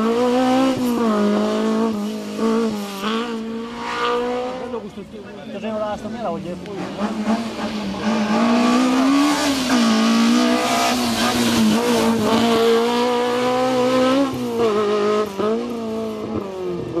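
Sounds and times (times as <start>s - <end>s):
car engine at high revs: 0.0s - 17.0s.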